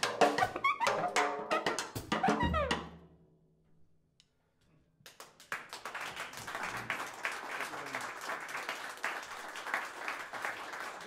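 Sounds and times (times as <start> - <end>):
audience applause: 5.1 - 11.0.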